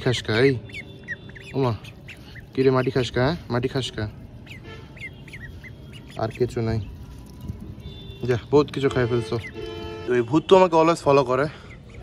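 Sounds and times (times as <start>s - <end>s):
ducklings peeping: 0.0s - 9.9s, 10.5s - 12.0s.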